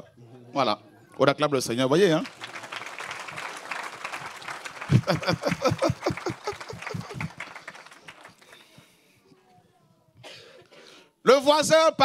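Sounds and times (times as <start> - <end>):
crowd applauding: 2.1 - 8.9.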